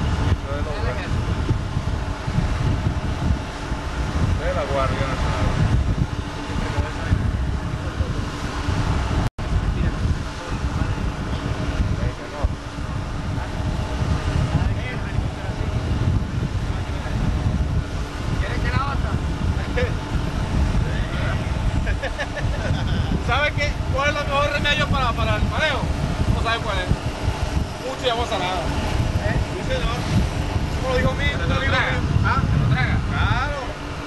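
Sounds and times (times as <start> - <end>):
wind rushing over microphone: 0.0 - 34.0.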